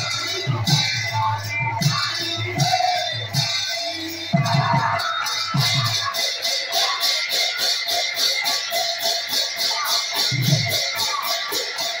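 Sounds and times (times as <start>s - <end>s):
brass hand cymbals beating: 0.0s - 12.0s
drum strokes: 0.0s - 12.0s.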